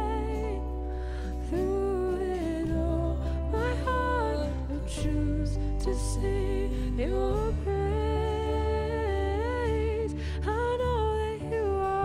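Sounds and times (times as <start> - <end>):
low sustained accompaniment: 0.0 - 12.0
woman singing worship song: 0.0 - 12.0.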